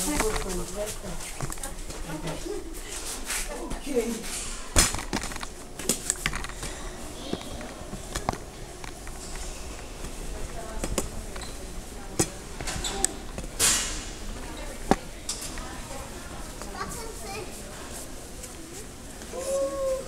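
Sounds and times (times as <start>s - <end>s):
footsteps: 0.0s - 20.0s
steady low hum: 0.0s - 20.0s.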